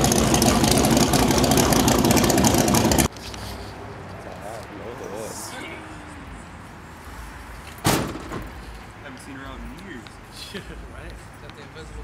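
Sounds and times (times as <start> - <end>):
car engine idling: 0.0 - 3.1
loud sharp bang: 7.8 - 8.5.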